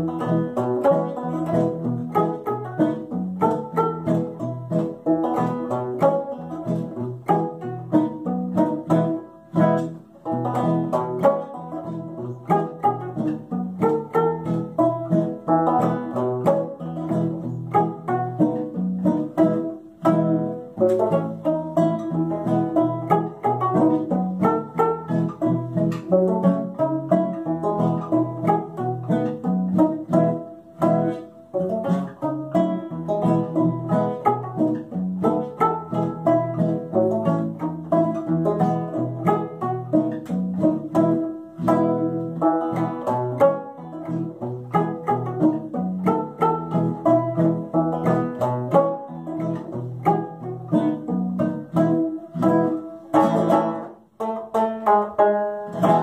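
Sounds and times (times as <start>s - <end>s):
acoustic guitar playing polka: 0.0s - 56.0s
banjo playing polka: 0.0s - 56.0s.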